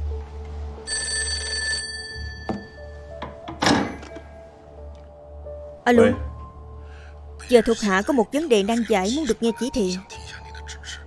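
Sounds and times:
telephone bell ringing: 0.8 - 3.1.

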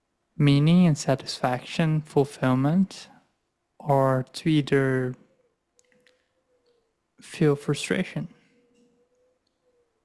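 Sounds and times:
man speaking: 0.4 - 3.2, 3.8 - 5.2, 7.2 - 8.4
faint clicks: 5.7 - 6.8.

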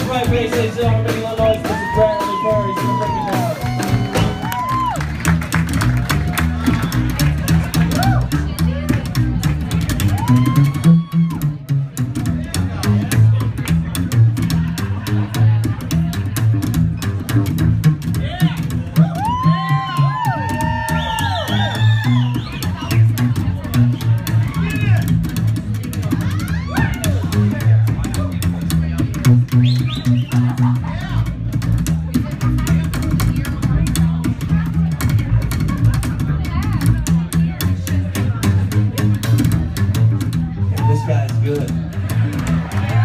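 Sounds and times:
blues band playing: 0.0 - 43.0
drum kit groove: 0.0 - 43.0
plucked double bass: 0.0 - 43.0
audience whooping: 1.5 - 8.4, 9.9 - 11.6, 19.0 - 23.1, 40.7 - 41.4, 42.1 - 43.0.

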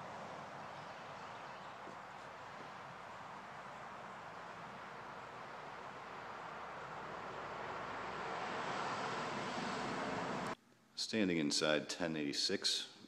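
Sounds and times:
rushing outdoor background noise: 0.0 - 10.6.

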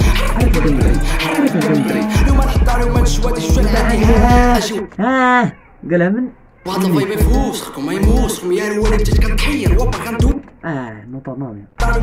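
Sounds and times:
rap music with deep bass beat: 0.0 - 5.0, 6.7 - 10.6, 11.8 - 12.0.

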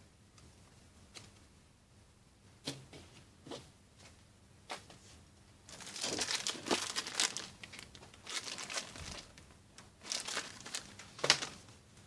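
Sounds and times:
plastic packaging crinkling: 5.7 - 11.7.

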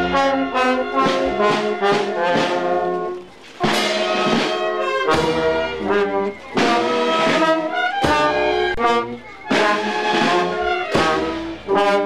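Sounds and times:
brass band playing a march: 0.0 - 12.0.

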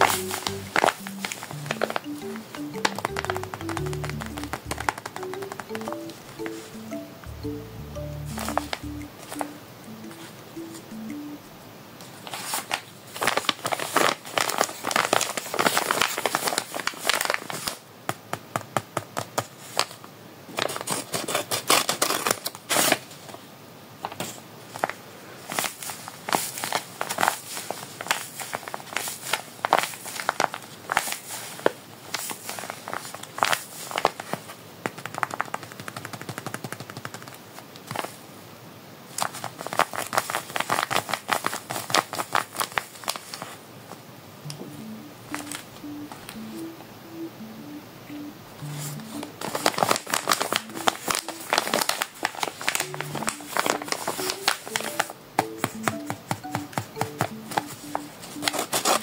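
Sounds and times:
paper crinkling and crackling: 0.0 - 6.6, 12.1 - 17.8, 19.2 - 23.4, 24.0 - 38.2, 39.1 - 43.6, 48.8 - 55.8, 57.1 - 59.0.

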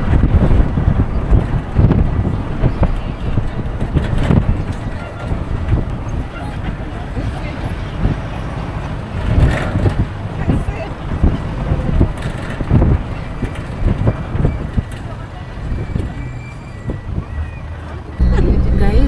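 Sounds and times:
vehicle engine and road noise: 0.0 - 19.0.

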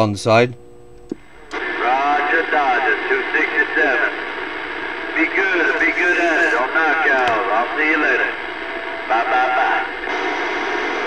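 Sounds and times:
radio static hiss: 0.3 - 11.0
garbled radio voice: 1.5 - 10.2.

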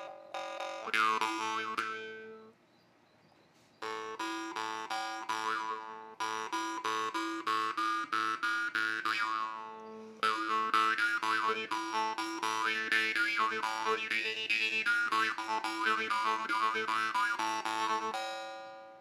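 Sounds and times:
jaw harp playing: 0.0 - 2.5, 3.8 - 19.0.

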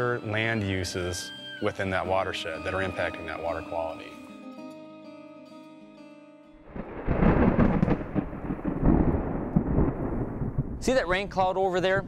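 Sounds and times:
soft background music: 0.0 - 6.6
thunder rumbling: 6.7 - 12.0.

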